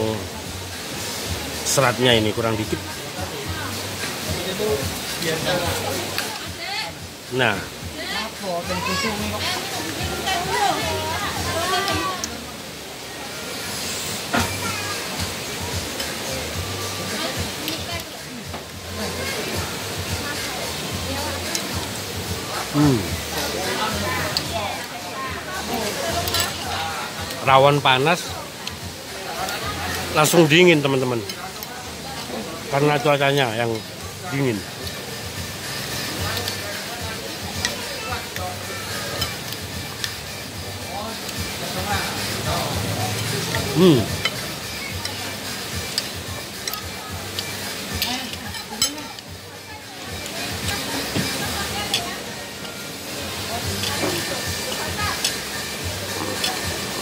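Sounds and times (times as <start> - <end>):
background music: 0.0 - 57.0
background noise: 0.0 - 57.0
faint voices: 0.0 - 57.0.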